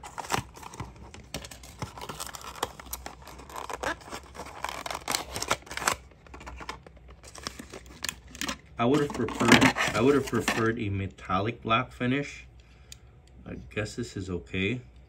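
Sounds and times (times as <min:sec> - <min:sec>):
cardboard box opening: 0:00.0 - 0:10.7
plastic blister tray crinkling: 0:00.0 - 0:10.7.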